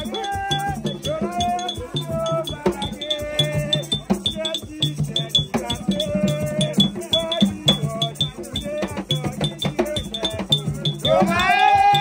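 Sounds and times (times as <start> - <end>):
hand drums playing: 0.0 - 12.0
loud singing voice: 0.0 - 12.0
voices singing: 0.0 - 12.0.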